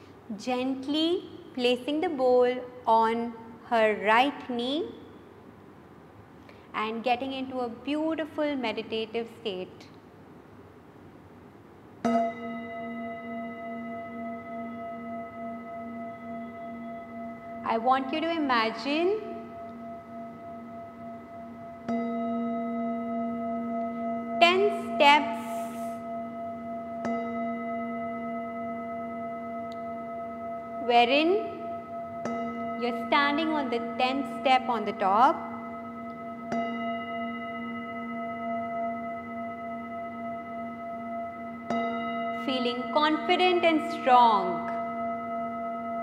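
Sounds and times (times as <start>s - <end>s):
singing bowl ringing: 12.0s - 46.0s
padded mallet striking bowl: 12.1s - 46.0s.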